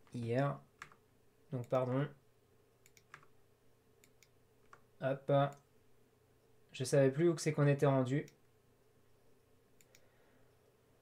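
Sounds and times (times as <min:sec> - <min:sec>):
low steady room hum: 0:00.0 - 0:11.0
computer mouse clicks: 0:00.8 - 0:01.0, 0:02.8 - 0:03.3, 0:04.0 - 0:04.9, 0:09.8 - 0:10.1.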